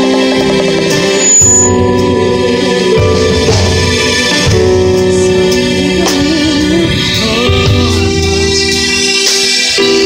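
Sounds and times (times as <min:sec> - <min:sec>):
live band music: 0:00.0 - 0:10.0
organ-like keyboard chords: 0:00.0 - 0:10.0.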